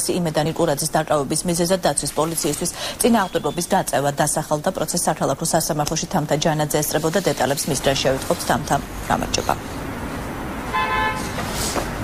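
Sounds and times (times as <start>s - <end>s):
street traffic: 0.0s - 12.0s
car horn toot: 10.7s - 11.4s.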